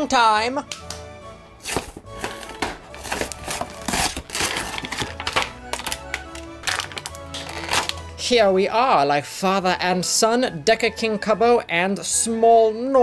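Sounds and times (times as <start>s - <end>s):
background music: 0.0s - 13.0s
plastic blister packaging crinkling: 2.1s - 8.0s
toy box torn open: 3.0s - 8.0s.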